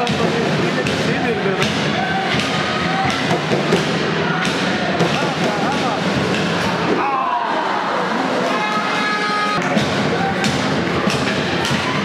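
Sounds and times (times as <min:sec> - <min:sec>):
voices echoing in hall: 0:00.0 - 0:12.0.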